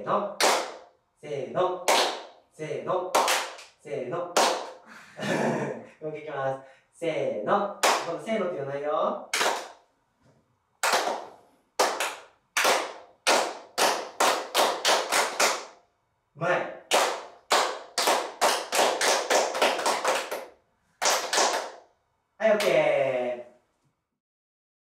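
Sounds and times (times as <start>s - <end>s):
children clapping in unison: 0.4s - 0.8s, 1.9s - 2.3s, 3.1s - 3.7s, 4.4s - 4.8s, 7.8s - 8.1s, 9.3s - 9.8s, 10.8s - 15.7s, 16.9s - 21.8s.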